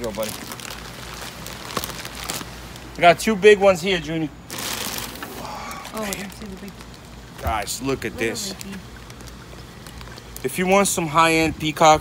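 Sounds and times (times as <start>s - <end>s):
water sloshing in plastic bag: 0.0s - 3.1s, 4.4s - 11.9s.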